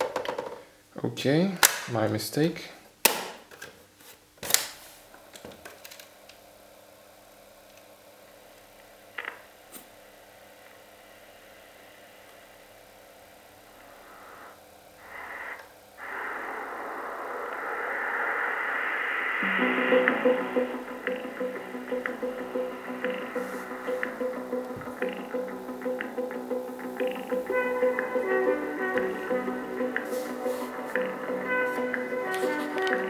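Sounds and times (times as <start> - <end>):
speaker hiss: 0.0 - 33.0
tape running noise: 5.1 - 33.0
music playing from tape: 11.0 - 33.0.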